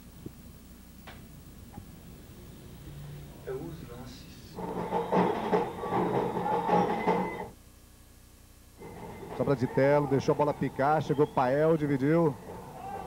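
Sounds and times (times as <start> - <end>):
stadium crowd noise: 4.6 - 7.5, 8.8 - 13.0.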